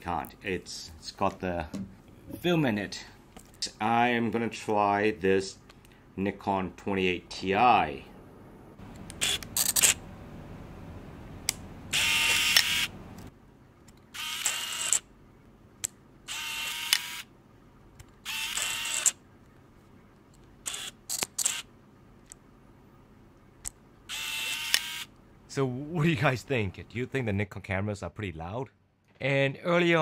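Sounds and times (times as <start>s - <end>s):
camera motor whirring: 9.1s - 10.0s, 11.9s - 13.0s, 14.1s - 15.0s, 16.3s - 17.3s, 18.2s - 19.2s, 20.6s - 21.7s, 24.1s - 25.1s
camera shutter clicks: 9.1s - 10.0s, 12.0s - 12.9s, 14.2s - 15.0s, 16.3s - 17.2s, 18.3s - 19.2s, 20.7s - 21.7s, 24.1s - 25.1s.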